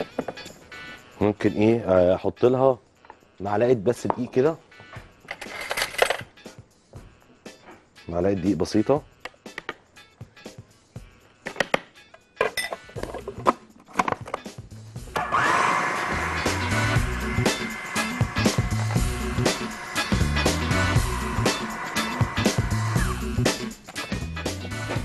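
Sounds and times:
food processor running: 0:15.2 - 0:23.0.

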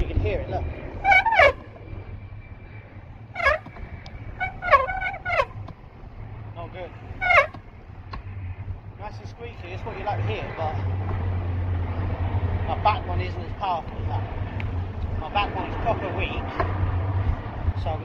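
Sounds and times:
road rumble: 0:00.0 - 0:18.0
wind: 0:00.0 - 0:18.0
bicycle brake squealing: 0:00.9 - 0:05.7, 0:07.0 - 0:07.8.

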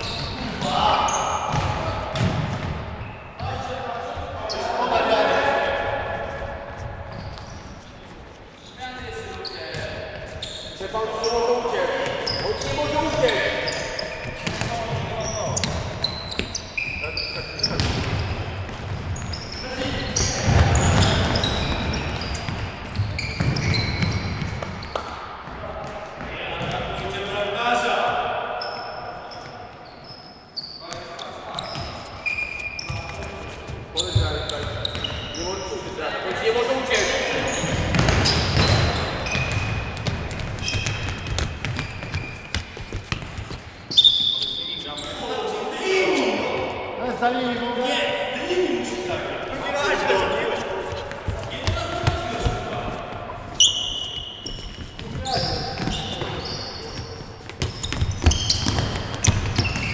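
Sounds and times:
ball kicked and bouncing: 0:37.7 - 0:43.6.

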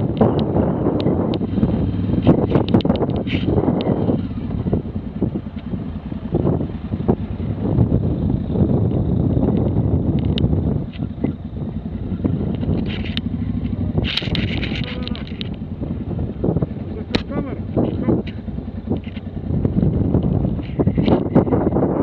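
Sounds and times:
motorcycle engine running: 0:00.0 - 0:22.0
wind noise on microphone: 0:00.0 - 0:22.0.

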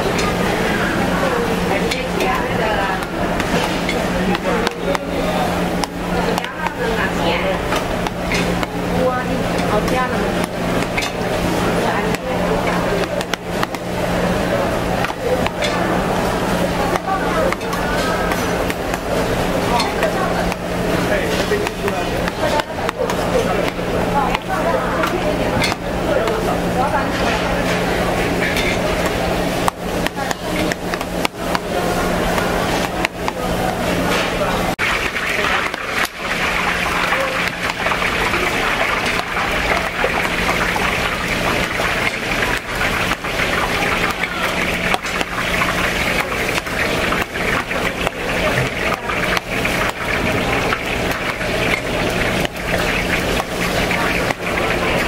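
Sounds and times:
chatter of many voices: 0:00.0 - 0:55.0
utensils clattering: 0:00.0 - 0:55.0.

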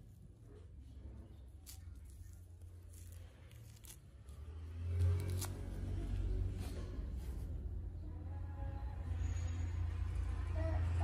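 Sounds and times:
orange rind tearing: 0:01.1 - 0:06.5.

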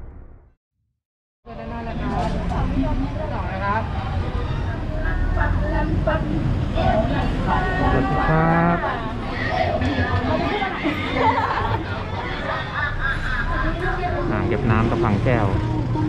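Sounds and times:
low rumble of road traffic: 0:01.5 - 0:16.0.

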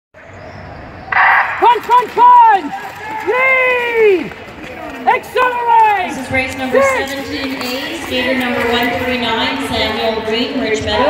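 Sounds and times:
spectators shouting: 0:01.1 - 0:07.1.

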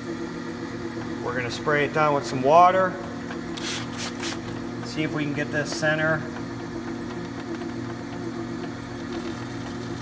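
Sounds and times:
lathe motor humming: 0:00.0 - 0:10.0.

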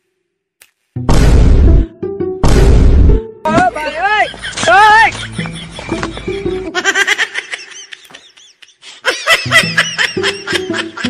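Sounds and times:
high-pitched laughter: 0:04.0 - 0:11.0.

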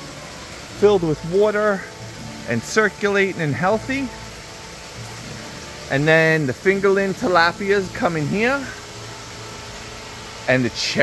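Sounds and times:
faint pump hum: 0:00.0 - 0:11.0
water rushing from waterfall: 0:00.0 - 0:11.0.

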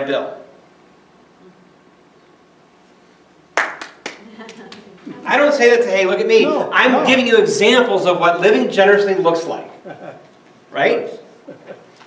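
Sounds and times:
congregation clapping: 0:03.5 - 0:05.0.

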